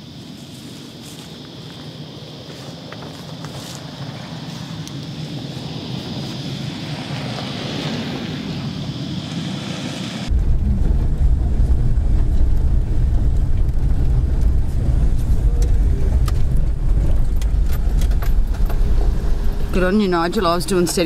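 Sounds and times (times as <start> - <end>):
wind on microphone: 1.0 - 21.0
car driving on dirt road: 1.2 - 21.0.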